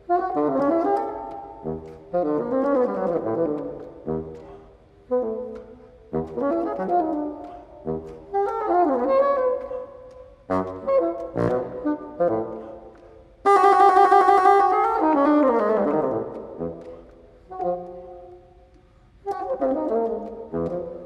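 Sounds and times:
bassoon solo: 0.0 - 18.6, 19.2 - 21.0.

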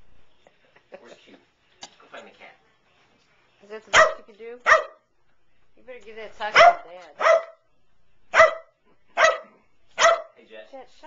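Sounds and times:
dog barking: 3.9 - 5.0, 6.5 - 7.7, 8.3 - 10.4.

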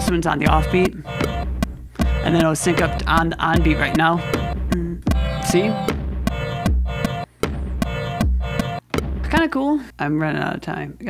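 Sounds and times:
kick drum: 0.0 - 5.3, 5.9 - 9.5
bell synth chords: 5.2 - 7.2.

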